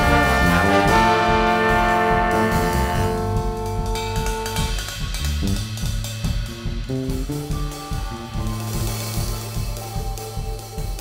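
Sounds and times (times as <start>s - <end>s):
brass chord: 0.0s - 5.9s
drum kit bass and keys groove: 0.0s - 11.0s.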